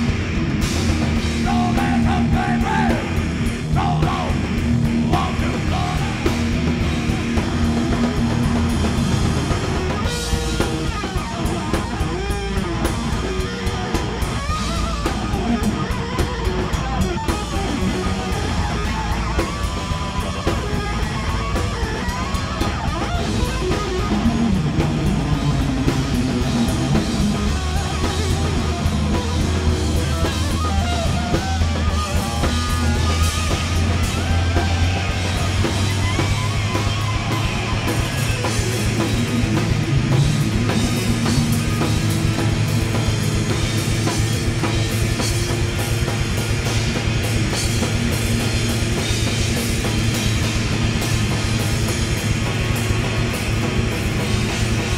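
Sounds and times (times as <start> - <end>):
distorted electric guitar: 0.0 - 54.9
drum kit: 0.0 - 54.9
electric bass: 0.0 - 54.9.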